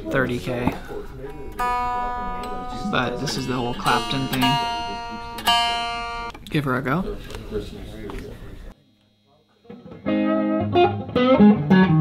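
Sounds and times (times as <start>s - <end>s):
electric guitar chord ringing: 1.3s - 6.3s, 9.7s - 12.0s.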